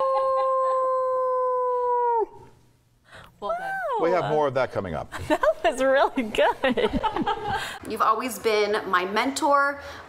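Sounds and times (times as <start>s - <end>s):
person howling like a wolf: 0.0s - 2.4s.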